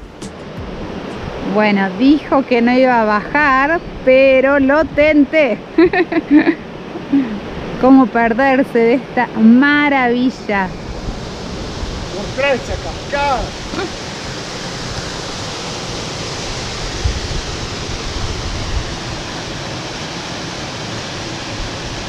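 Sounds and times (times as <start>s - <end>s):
waterfall rushing into pool: 10.8s - 22.0s.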